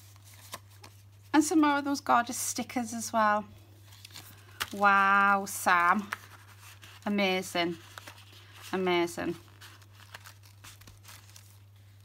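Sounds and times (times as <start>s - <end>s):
paper and card rustling: 0.0s - 1.5s, 3.8s - 12.0s
low steady hum: 0.0s - 12.0s.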